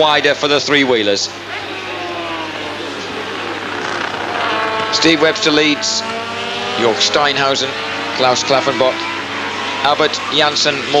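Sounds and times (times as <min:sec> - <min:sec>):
racing engines passing: 0:00.0 - 0:11.0.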